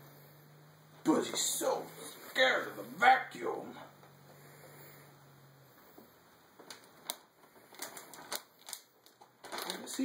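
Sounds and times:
plastic bag clicks: 6.6 - 10.0
plastic bag crinkling: 6.6 - 10.0.

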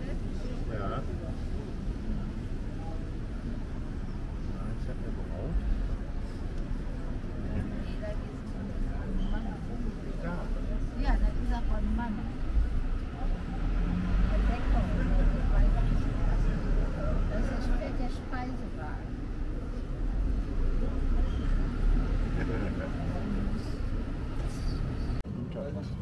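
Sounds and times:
indistinct talking: 0.0 - 26.0.

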